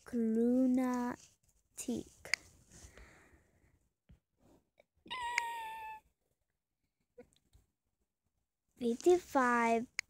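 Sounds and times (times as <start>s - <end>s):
high meow-like call: 5.1s - 6.0s.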